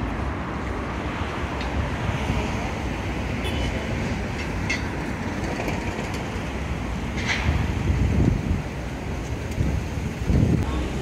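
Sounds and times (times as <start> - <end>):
passing vehicles rumbling: 0.0 - 11.0
wind buffeting microphone: 4.1 - 11.0.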